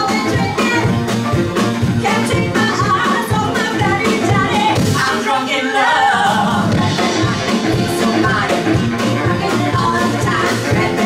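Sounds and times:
upright bass: 0.0 - 5.2, 6.4 - 11.0
voices singing: 2.0 - 11.0
saxophone: 6.7 - 11.0.

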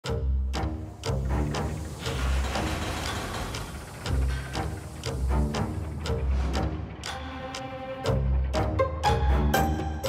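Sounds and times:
orchestral music: 0.0 - 10.0.

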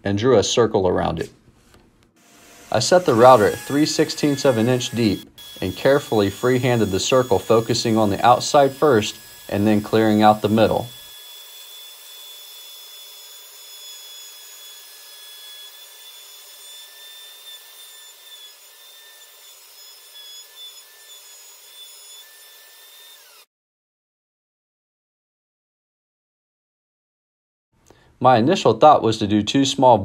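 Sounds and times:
router whining while cutting wood: 2.2 - 23.5.

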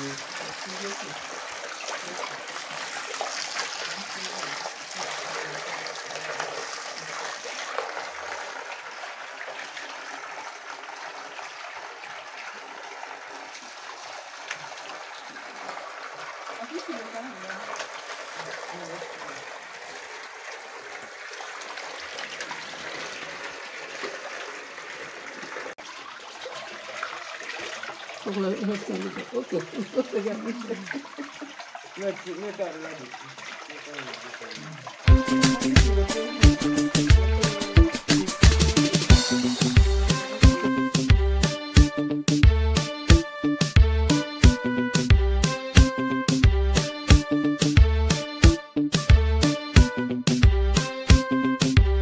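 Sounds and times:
water pouring and splashing into pond: 0.0 - 52.0.

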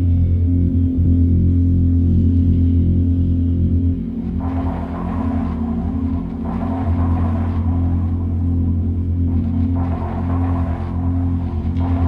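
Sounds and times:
deep bass drone: 0.0 - 12.0.

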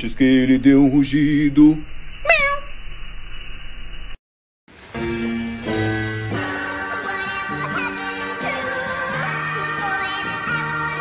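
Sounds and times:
cat meowing: 2.2 - 2.7
steady hiss: 4.7 - 10.9.

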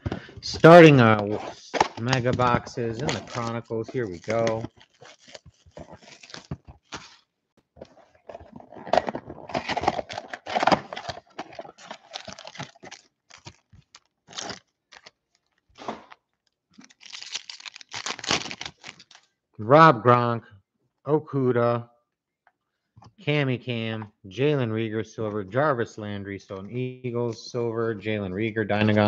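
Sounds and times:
foil packs rustling: 0.7 - 7.2, 7.8 - 16.2, 16.8 - 19.3
plastic shrink-wrap crinkling: 1.6 - 15.8, 16.4 - 19.3
foil pack tearing open: 1.8 - 7.2, 8.2 - 15.6, 16.8 - 19.3.

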